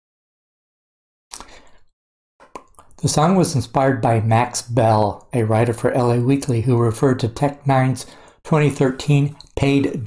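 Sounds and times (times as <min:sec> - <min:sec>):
wet lip smack: 0:01.3 - 0:01.6, 0:02.4 - 0:03.0
small mouth clicks: 0:01.3 - 0:01.8, 0:02.4 - 0:03.0
man breathing in: 0:01.4 - 0:01.9, 0:08.0 - 0:08.4.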